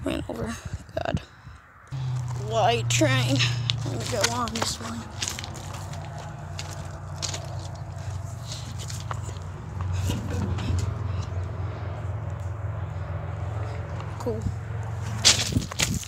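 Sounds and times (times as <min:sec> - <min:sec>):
steady low hum: 0:01.9 - 0:15.2
footsteps crunching on stones: 0:02.0 - 0:09.6, 0:15.0 - 0:16.0.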